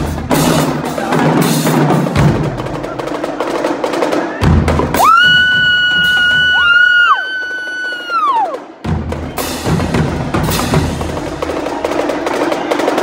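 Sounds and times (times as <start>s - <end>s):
marching drumline with cymbals: 0.0s - 13.0s.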